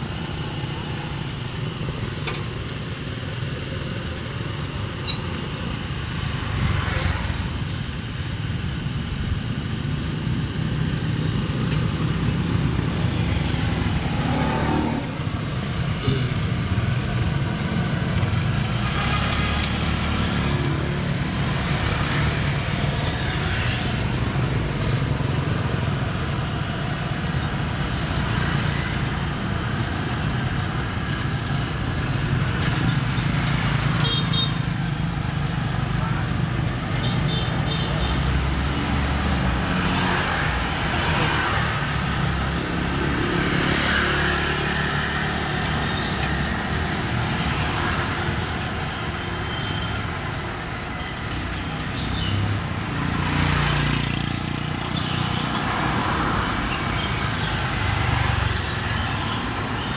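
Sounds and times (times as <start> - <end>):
road and wind rumble: 0.0 - 59.9
street traffic with motorbikes: 0.0 - 59.9.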